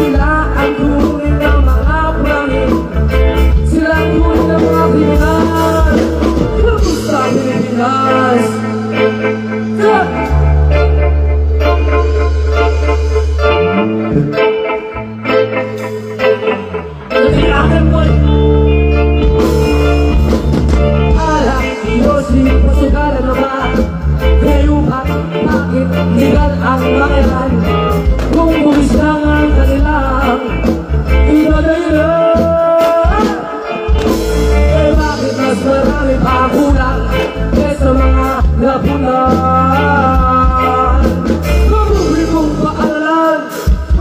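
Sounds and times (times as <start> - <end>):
man singing: 0.0 - 12.3, 16.4 - 44.0
live rock band: 0.0 - 44.0.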